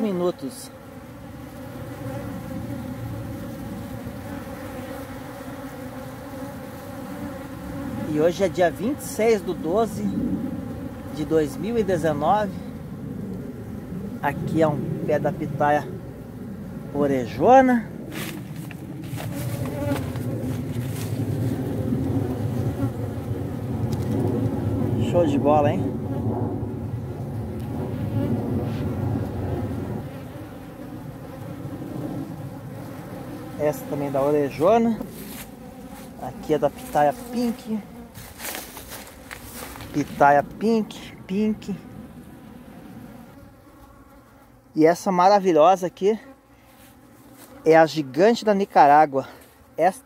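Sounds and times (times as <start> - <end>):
honeybees buzzing: 0.0 - 50.0.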